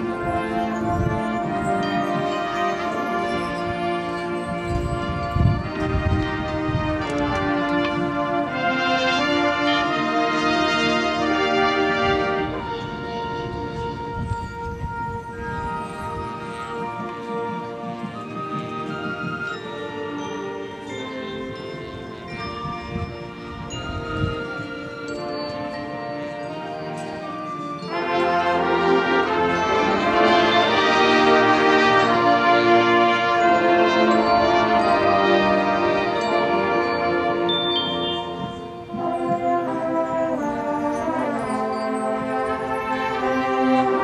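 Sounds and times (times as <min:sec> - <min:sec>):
marching band brass chords: 0:00.0 - 0:22.5, 0:24.4 - 0:44.0
high brass note held: 0:37.5 - 0:38.8.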